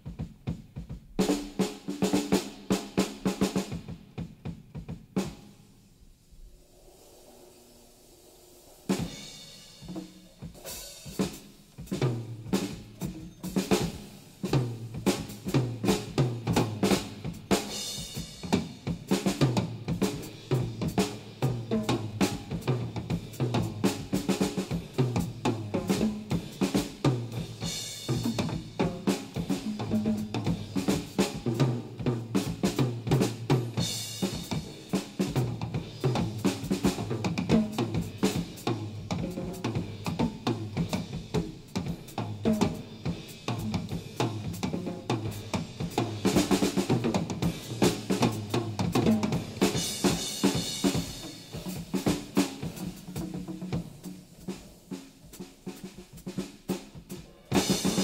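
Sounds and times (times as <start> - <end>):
jazz drum kit playing: 0.0 - 58.0
cymbal washes: 5.2 - 58.0.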